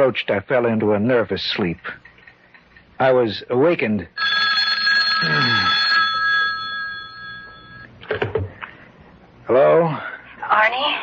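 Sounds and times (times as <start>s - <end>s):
telephone bell ringing: 4.2s - 7.9s.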